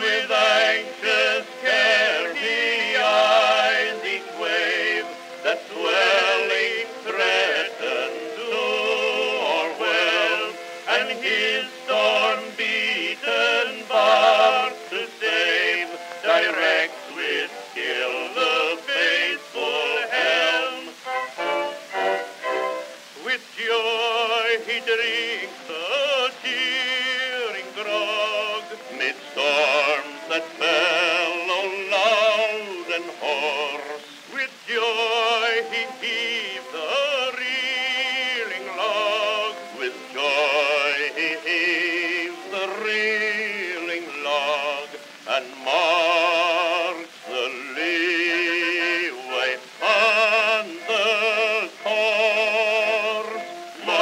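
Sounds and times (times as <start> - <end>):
male vocal duet with accompaniment: 0.0 - 21.1, 21.9 - 54.0
man singing with vibrato: 0.0 - 54.0.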